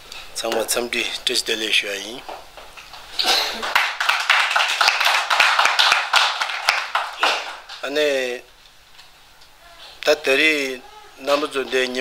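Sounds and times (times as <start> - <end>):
man speaking: 10.0 - 12.0
faint voices: 10.7 - 12.0.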